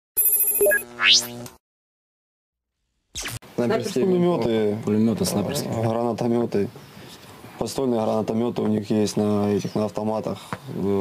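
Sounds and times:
bright electronic chime: 0:00.2 - 0:00.9.

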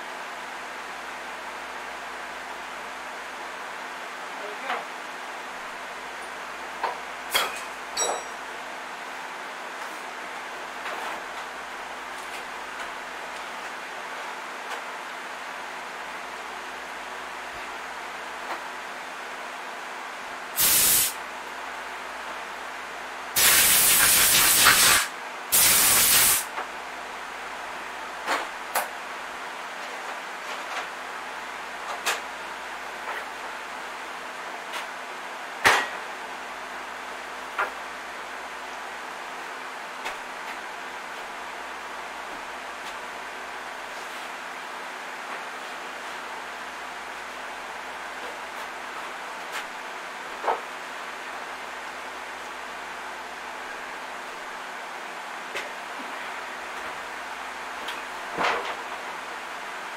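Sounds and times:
hissing from pressurized nozzle: 0:20.6 - 0:21.2, 0:23.4 - 0:26.4.

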